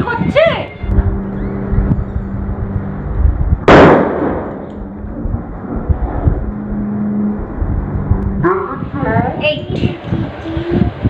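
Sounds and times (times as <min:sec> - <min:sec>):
balloon bursting with loud bang: 0:03.6 - 0:04.6.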